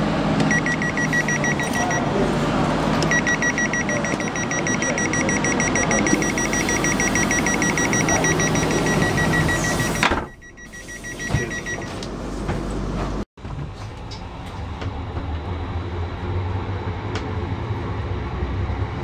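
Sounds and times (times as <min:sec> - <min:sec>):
train door warning beeps: 0:00.4 - 0:02.1, 0:03.0 - 0:12.0
platform ambience: 0:00.4 - 0:12.0.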